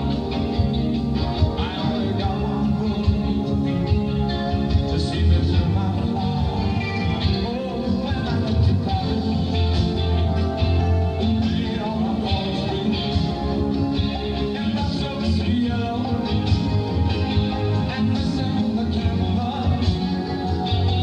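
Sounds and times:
live rock band with piano: 0:00.0 - 0:21.0.

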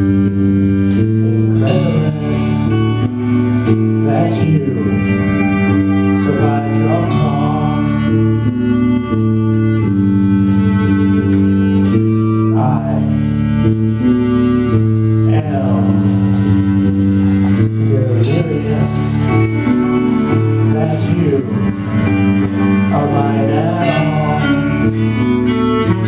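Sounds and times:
live rock band playing: 0:00.0 - 0:26.0
person singing: 0:00.0 - 0:26.0.

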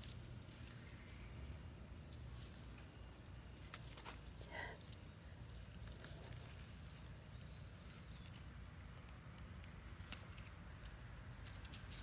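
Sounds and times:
rustling vines: 0:00.0 - 0:12.0.

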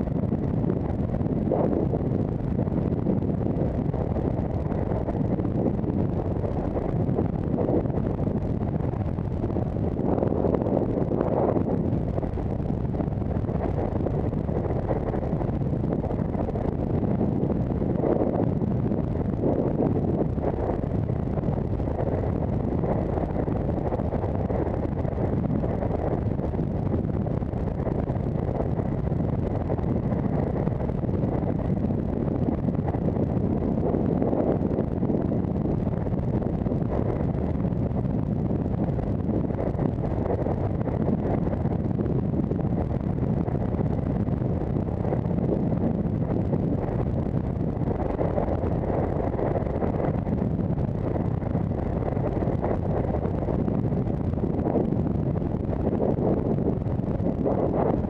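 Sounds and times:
wind rumbling on microphone: 0:00.0 - 0:58.0.

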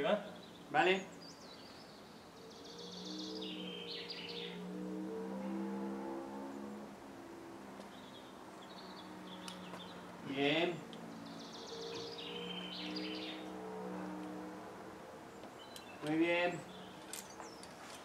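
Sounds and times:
bird trilling calls: 0:00.3 - 0:04.8, 0:11.1 - 0:13.6.

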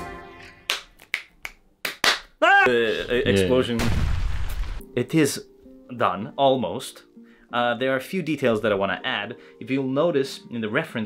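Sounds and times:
finger snaps: 0:00.7 - 0:02.3.

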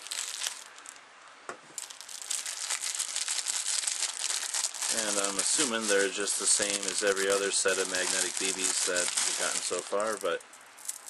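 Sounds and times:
packaging crinkling and rustling: 0:00.0 - 0:01.0, 0:01.8 - 0:11.0.

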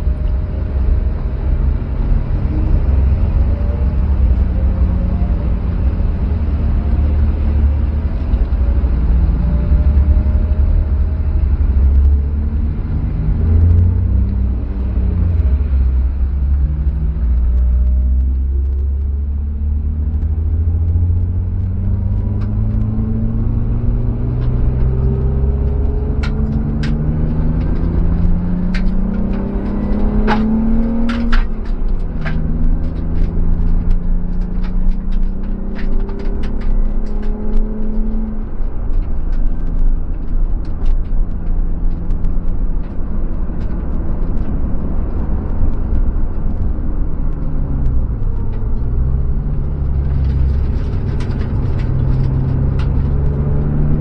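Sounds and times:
car engine from inside cabin: 0:00.0 - 0:54.0.

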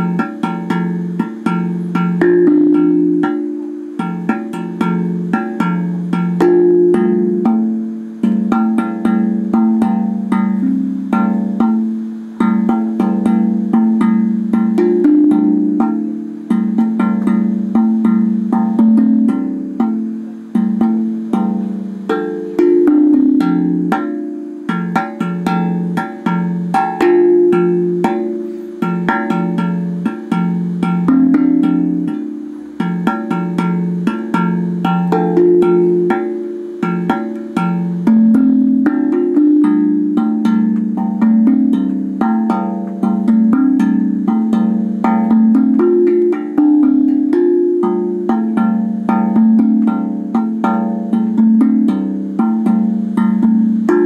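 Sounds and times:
steel tongue drum notes: 0:00.0 - 0:54.0.

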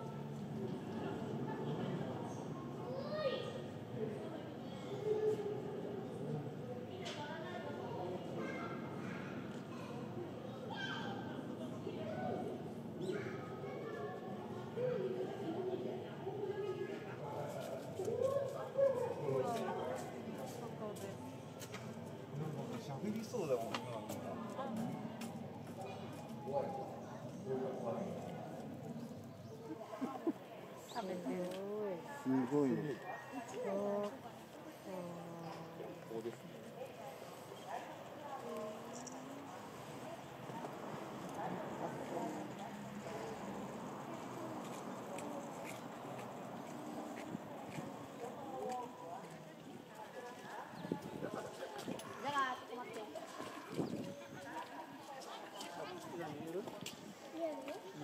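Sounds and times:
chatter of voices: 0:00.0 - 0:58.0.

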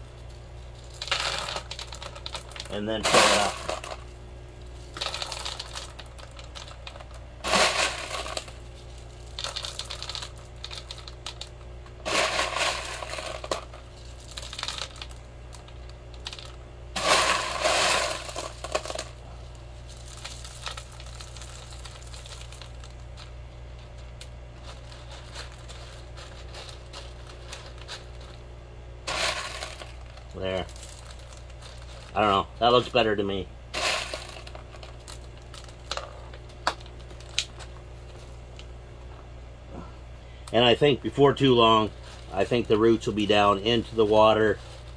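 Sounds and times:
clay pebbles clattering: 0:00.0 - 0:28.4, 0:29.0 - 0:38.7, 0:40.5 - 0:44.9
low hum: 0:00.0 - 0:44.9.

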